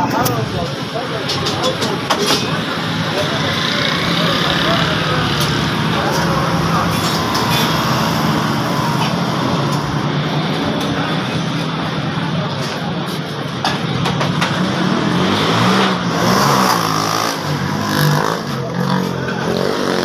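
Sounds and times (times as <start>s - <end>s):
people talking: 0.0s - 20.0s
traffic hum: 0.0s - 20.0s.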